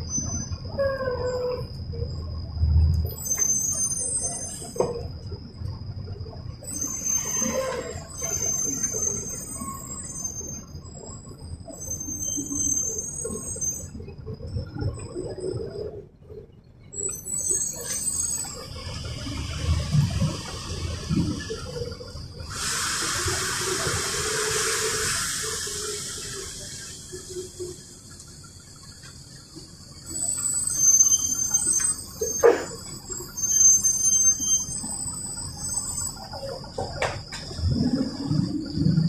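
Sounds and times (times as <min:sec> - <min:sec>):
rattles and squeaks from bus body: 0:00.0 - 0:22.4, 0:23.3 - 0:39.0
bus engine and road rumble: 0:00.0 - 0:39.0
compressed air hiss: 0:22.5 - 0:27.4.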